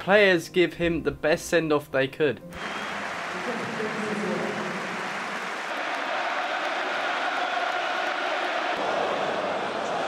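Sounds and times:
stadium crowd applauding and cheering: 0:02.6 - 0:10.0.

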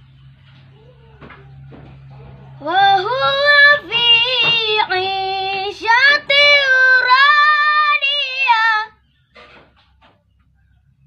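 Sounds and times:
boy reciting melodically: 0:02.6 - 0:09.0.

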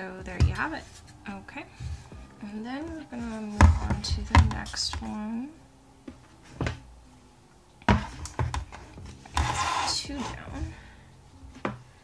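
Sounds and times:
object sliding with scraping: 0:09.0 - 0:10.4.

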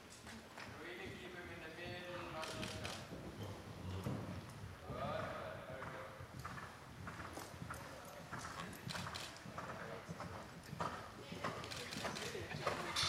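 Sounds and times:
horse hoofbeats on sand: 0:03.0 - 0:12.9.

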